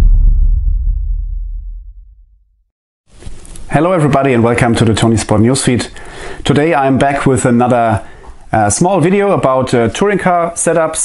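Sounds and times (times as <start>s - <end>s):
deep rumbling bass boom: 0.0s - 2.6s.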